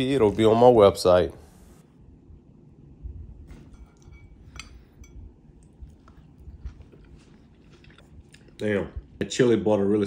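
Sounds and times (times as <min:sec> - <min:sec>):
faint chewing: 0:04.0 - 0:09.2.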